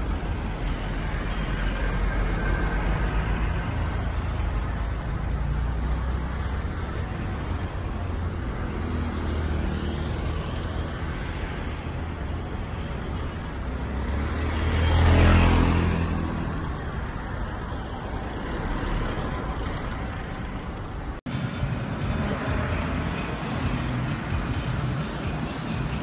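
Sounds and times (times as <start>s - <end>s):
steady road noise: 0.0s - 26.0s
vehicle passing close by: 13.6s - 20.3s, 21.3s - 26.0s.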